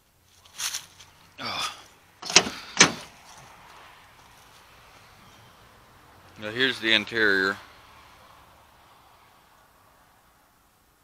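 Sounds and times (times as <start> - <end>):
car door latch clicks: 2.2 - 3.1.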